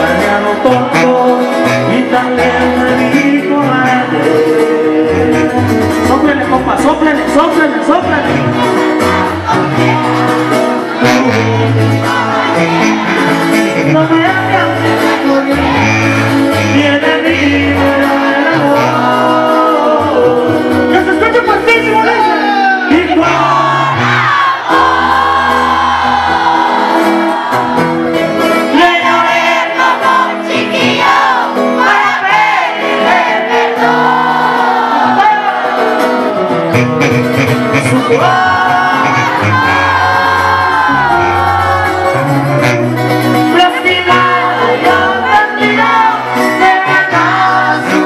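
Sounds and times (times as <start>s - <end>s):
voices singing or shouting: 0.0s - 37.0s, 37.8s - 48.0s
crowd noise: 0.0s - 48.0s
tuba bass notes: 0.0s - 48.0s
twelve-string acoustic guitar: 0.0s - 48.0s.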